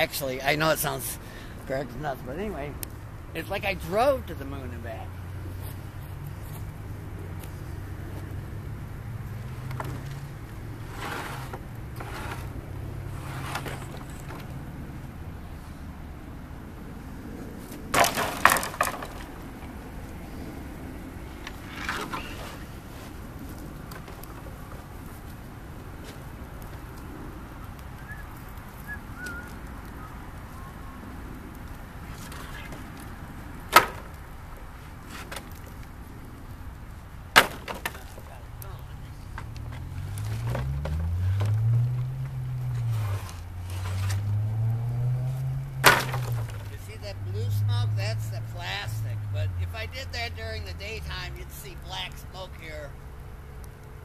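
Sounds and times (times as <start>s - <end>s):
burning wood popping: 0.0s - 54.0s
boards clattering onto wood pile: 17.9s - 19.4s, 33.7s - 34.1s, 37.4s - 38.3s, 45.8s - 46.7s.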